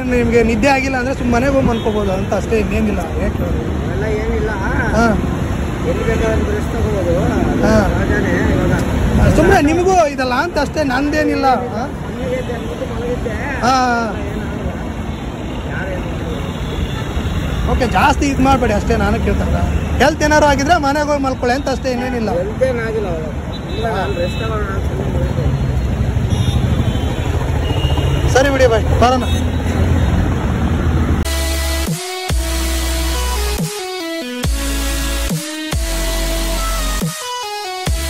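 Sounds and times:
road traffic: 0:00.0 - 0:38.0
electronic music: 0:31.2 - 0:38.0.

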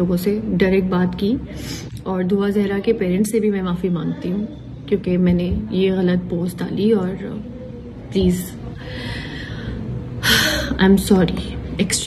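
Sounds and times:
woman speaking: 0:00.0 - 0:08.8
woman breathing: 0:08.8 - 0:10.8.

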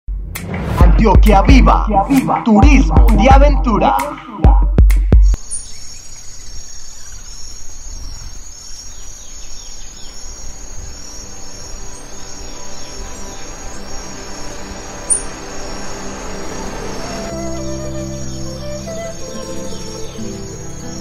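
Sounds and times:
bird chirps: 0:05.2 - 0:21.0
insect chorus trilling: 0:05.4 - 0:21.0.

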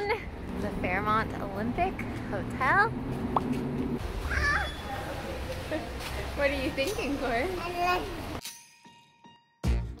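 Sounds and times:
toddler squealing: 0:04.3 - 0:04.9.

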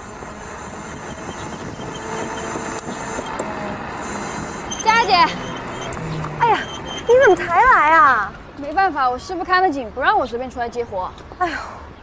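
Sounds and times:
electric scooter approaching: 0:00.0 - 0:09.8
wavering voice-like call: 0:04.7 - 0:07.5.

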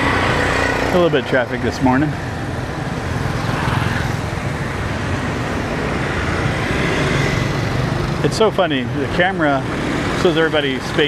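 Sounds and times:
cars and motorbikes passing: 0:00.0 - 0:11.0.

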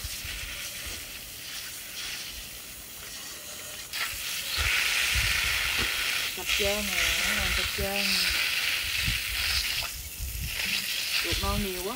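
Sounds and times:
water running from hose: 0:00.0 - 0:11.9.

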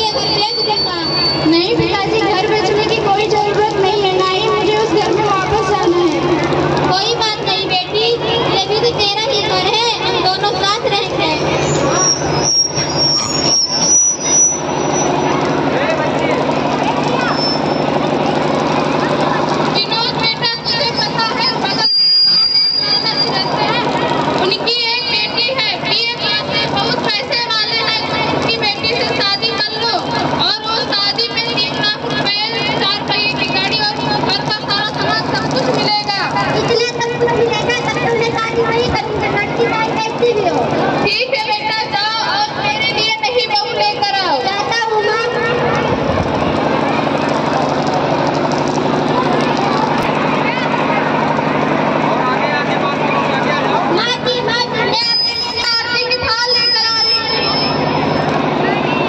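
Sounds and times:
children speaking over loudspeaker: 0:00.0 - 0:14.0, 0:14.9 - 0:59.0
steady noisy background: 0:00.0 - 0:59.0.

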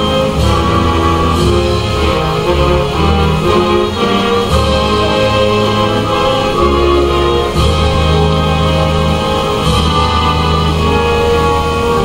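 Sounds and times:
instrumental anthem over loudspeakers: 0:00.0 - 0:12.0.

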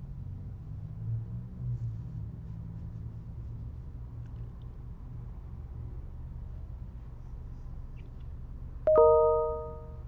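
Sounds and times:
low steady hum: 0:02.7 - 0:10.0
two-note ding-dong chime: 0:08.9 - 0:10.0.

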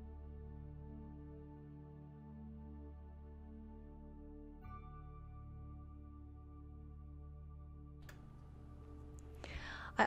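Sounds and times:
background music: 0:00.0 - 0:10.0
breathy in-breath: 0:09.4 - 0:10.0.

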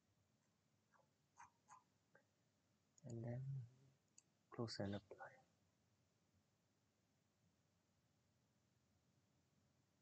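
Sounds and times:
man speaking: 0:03.0 - 0:03.8, 0:04.5 - 0:05.4
computer mouse clicks: 0:04.1 - 0:04.3.

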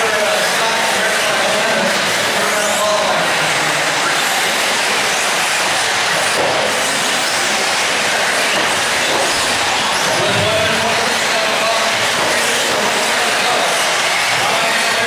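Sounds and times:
rc car engines buzzing: 0:00.0 - 0:15.0.

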